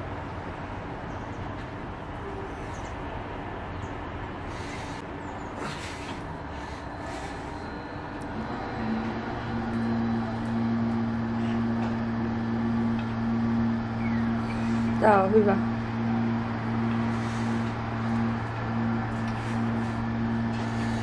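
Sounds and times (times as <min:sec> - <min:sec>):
low machine hum: 0:00.0 - 0:21.0
outdoor town background noise: 0:00.0 - 0:21.0.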